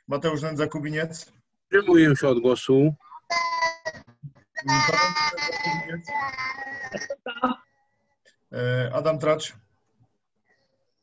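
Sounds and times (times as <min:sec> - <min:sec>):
garbled voice over video call: 0:00.0 - 0:09.7.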